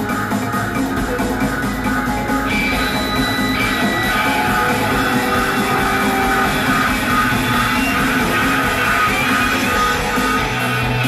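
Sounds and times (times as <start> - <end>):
live band playing loud music: 0.0 - 11.0
high held note: 1.0 - 10.5.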